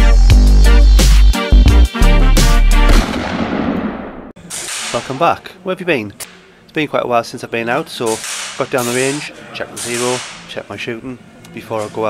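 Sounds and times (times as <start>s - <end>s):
sharp crack: 2.8s - 5.4s, 8.1s - 10.6s.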